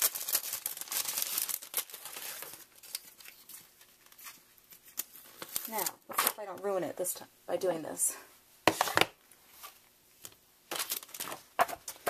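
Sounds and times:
paper rustling: 0.0s - 5.9s.

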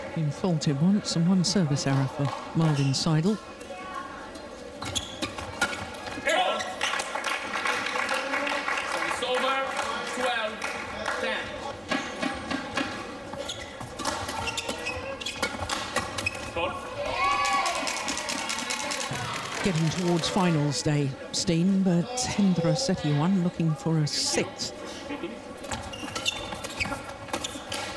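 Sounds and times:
shoe squeaks on court floor: 2.6s - 3.0s, 4.8s - 5.9s, 13.3s - 16.6s, 25.6s - 27.9s.

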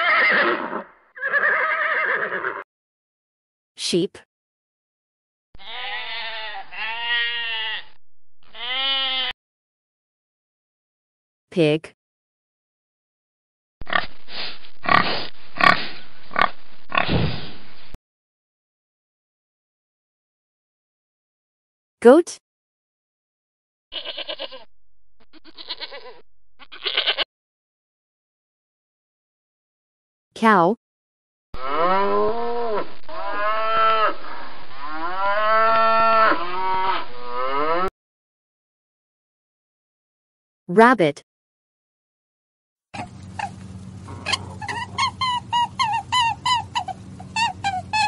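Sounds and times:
cow mooing: 5.6s - 9.3s, 31.6s - 37.9s
pig grunting: 13.8s - 14.1s, 14.8s - 17.4s, 44.1s - 46.9s.

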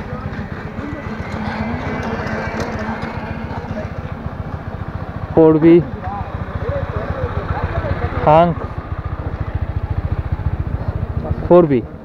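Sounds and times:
motorcycle engine running: 0.0s - 12.0s
road and air noise: 0.0s - 12.0s.

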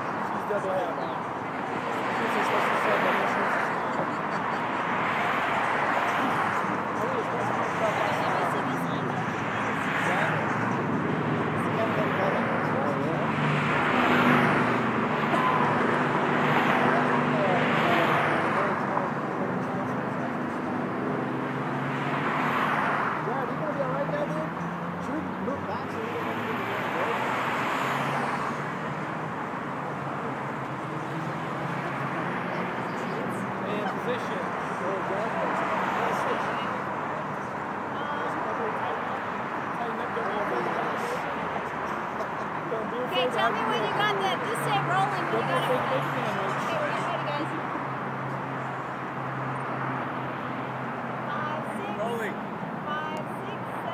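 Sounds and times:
cars passing: 0.0s - 53.9s
indistinct voices talking: 0.0s - 53.9s.

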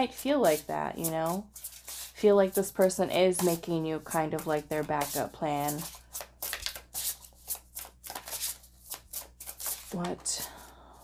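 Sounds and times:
cards being shuffled: 1.0s - 2.7s, 3.4s - 10.3s.

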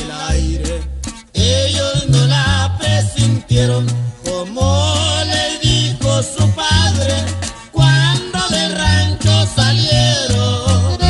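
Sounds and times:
norteno music playing: 3.0s - 11.0s.

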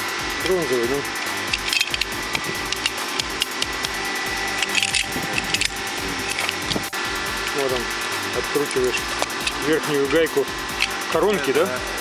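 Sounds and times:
steady background hum: 0.0s - 12.0s
pipe wrench clicking and scraping: 1.2s - 7.7s, 8.5s - 9.8s, 10.7s - 11.0s.

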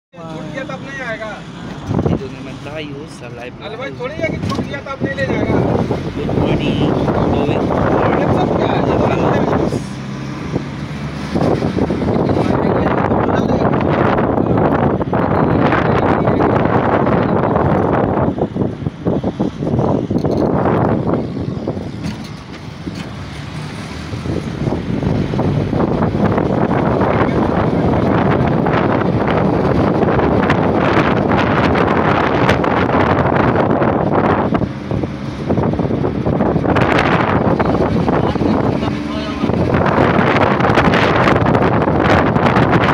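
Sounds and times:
road and engine noise: 0.1s - 42.9s
wind buffeting microphone: 1.6s - 42.9s.

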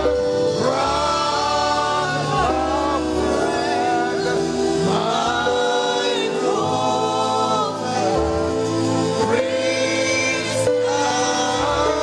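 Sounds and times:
sustained musical backing: 0.0s - 12.0s
voices singing held notes: 0.0s - 12.0s.

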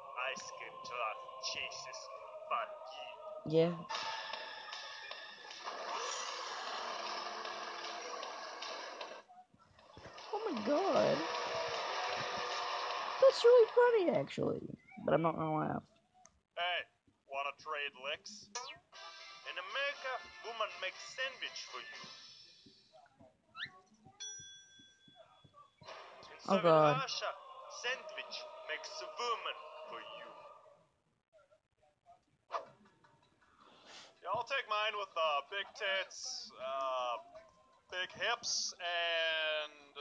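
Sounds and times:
bell-like ding: 24.2s - 25.4s.

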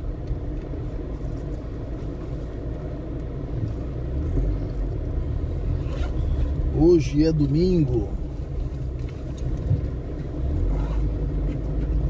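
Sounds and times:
car engine idling from inside: 0.0s - 12.0s.

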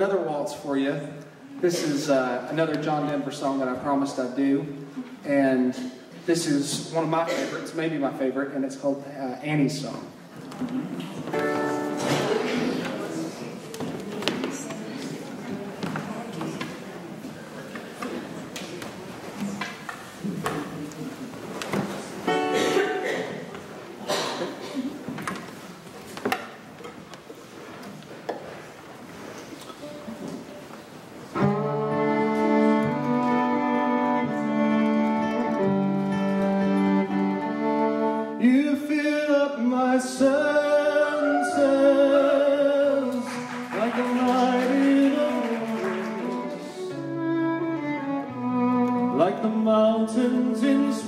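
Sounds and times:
acoustic guitar: 9.4s - 27.6s, 28.4s - 51.0s
fiddle playing a slow waltz: 31.3s - 38.4s, 45.9s - 51.0s.

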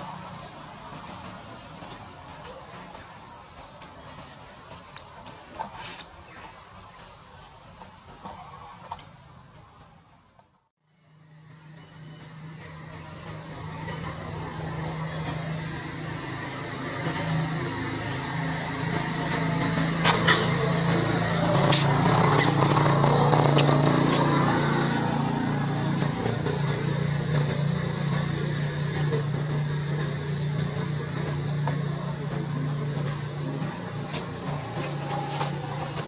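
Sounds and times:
vehicle engine humming: 0.0s - 36.0s
high squeak: 22.2s - 22.9s.

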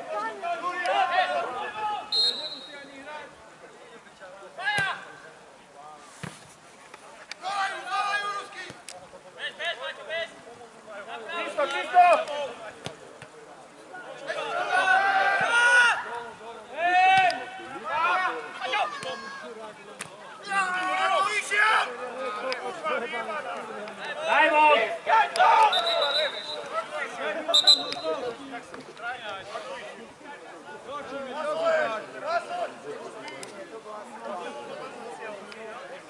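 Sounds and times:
voices shouting: 14.2s - 19.6s, 24.2s - 28.4s.

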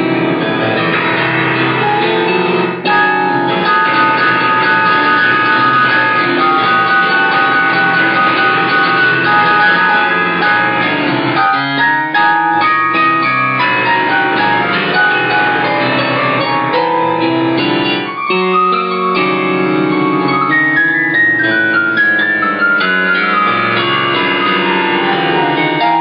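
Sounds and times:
instrumental music: 0.0s - 26.0s.

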